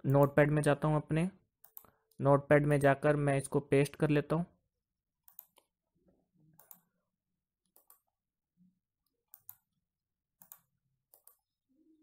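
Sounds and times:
faint computer mouse clicks: 0:05.3 - 0:05.7, 0:06.6 - 0:06.9, 0:07.7 - 0:08.1.

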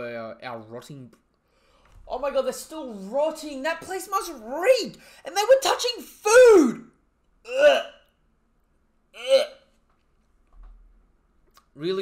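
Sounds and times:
man grunting in disgust: 0:07.5 - 0:08.0.

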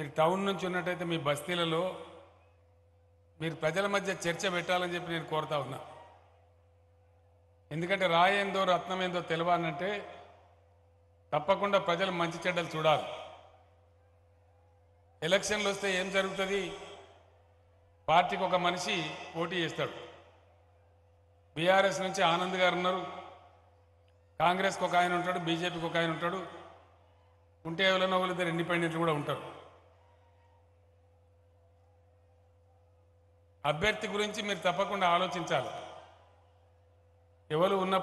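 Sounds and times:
faint steady low hum: 0:00.0 - 0:38.0
man speaking: 0:15.2 - 0:17.1, 0:24.4 - 0:26.7.

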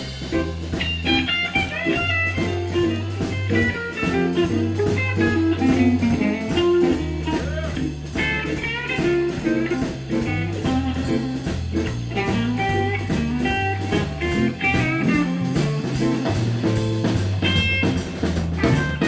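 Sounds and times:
drums: 0:00.0 - 0:19.0
electric guitar lines: 0:00.0 - 0:19.0
low bass line: 0:00.0 - 0:19.0.

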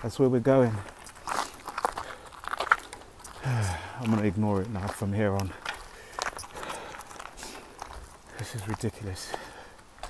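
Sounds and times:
footsteps crunching on gravel: 0:00.0 - 0:10.0.

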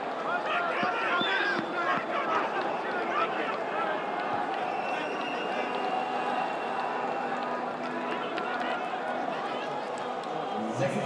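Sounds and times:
stadium crowd din: 0:00.0 - 0:11.0.

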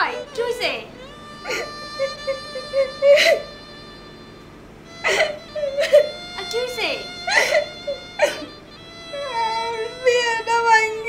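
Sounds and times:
woman sobbing: 0:00.0 - 0:04.1, 0:04.9 - 0:11.0
woman wailing: 0:00.0 - 0:04.1, 0:04.9 - 0:11.0.

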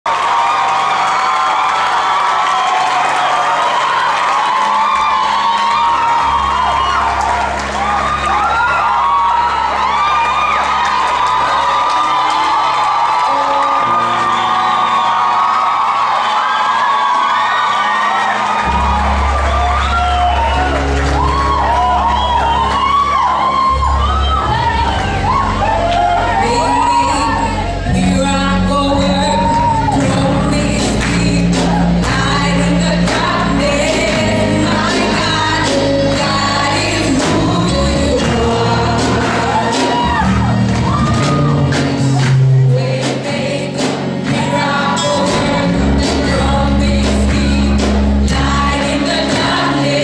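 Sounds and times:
crowd cheering and calling out: 0:00.0 - 0:50.0.

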